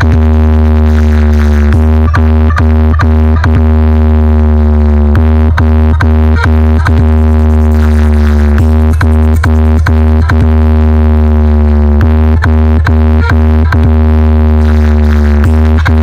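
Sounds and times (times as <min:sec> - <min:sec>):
heavy bass drone: 0:00.0 - 0:16.0
sharp electronic beats: 0:00.0 - 0:16.0.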